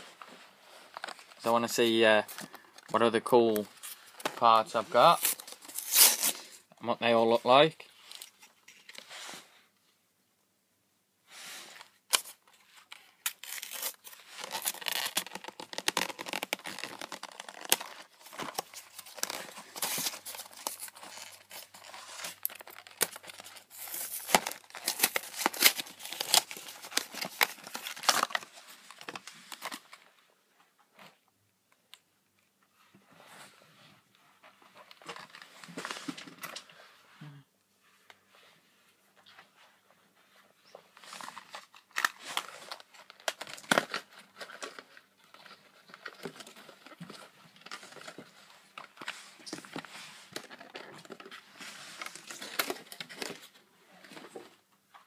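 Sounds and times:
packaging tearing and crinkling: 5.0s - 6.6s, 12.1s - 30.0s, 41.0s - 53.5s.

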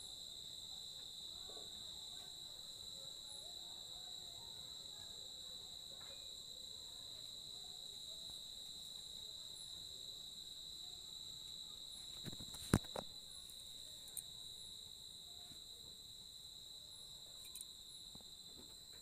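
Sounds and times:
night insects trilling: 0.0s - 19.0s.

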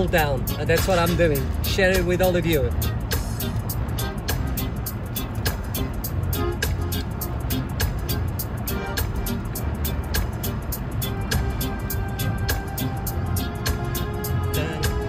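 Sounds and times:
car rumble: 0.0s - 15.0s
song with drum beat on car stereo: 0.0s - 15.0s.

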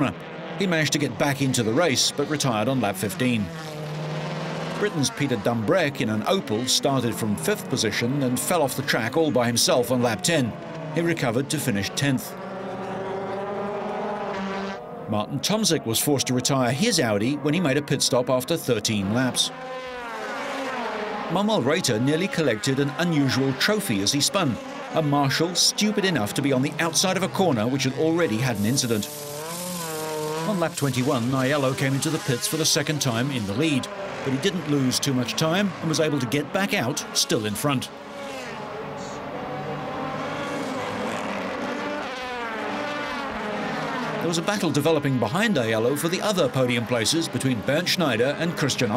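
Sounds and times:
race car engine running hard: 0.0s - 17.7s, 18.6s - 48.9s.

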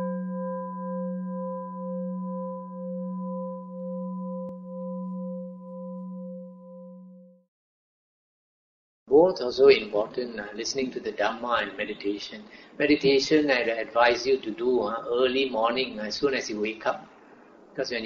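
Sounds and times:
singing bowl ringing: 0.0s - 7.4s.

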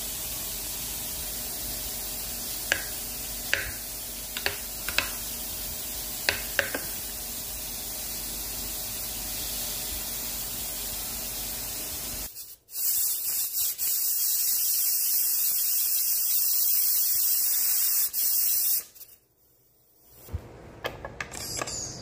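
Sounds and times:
pressure cooker valve hissing: 0.0s - 19.2s
steady hiss: 0.0s - 20.3s.

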